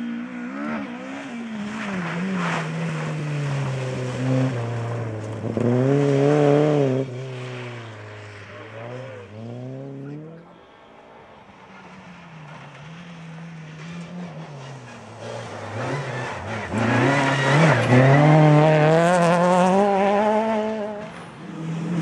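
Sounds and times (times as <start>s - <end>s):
rally car engine approaching: 0.0s - 22.0s
rally car pulling away through gears: 0.2s - 10.1s, 12.6s - 22.0s.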